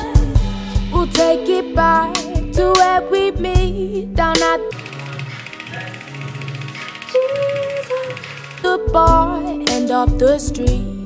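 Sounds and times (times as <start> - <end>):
quiet background music: 1.1 - 11.0
electric brush ticking buzz: 4.7 - 10.4.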